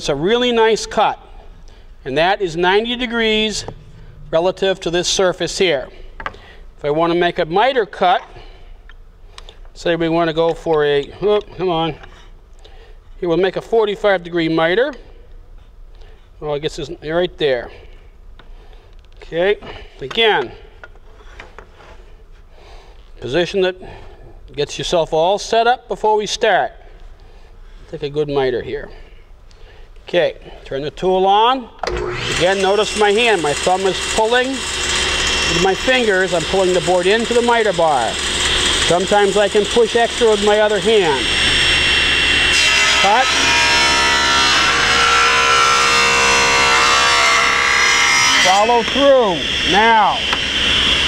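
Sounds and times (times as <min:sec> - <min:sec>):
shop hum: 0:00.0 - 0:12.5, 0:28.6 - 0:51.0
table saw cutting board: 0:31.9 - 0:51.0.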